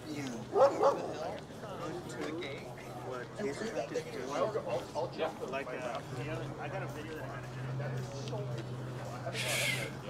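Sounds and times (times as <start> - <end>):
dog barking: 0.5 - 1.1.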